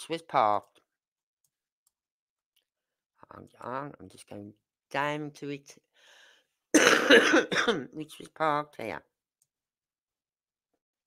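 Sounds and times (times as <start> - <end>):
person coughing: 6.8 - 7.9.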